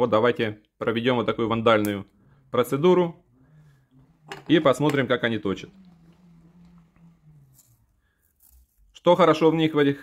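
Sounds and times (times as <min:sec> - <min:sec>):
pencil sharpener scraping: 0:03.2 - 0:08.9.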